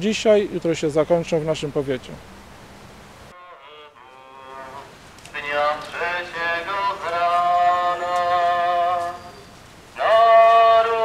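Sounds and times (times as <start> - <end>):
voices singing a hymn: 0.7 - 11.0.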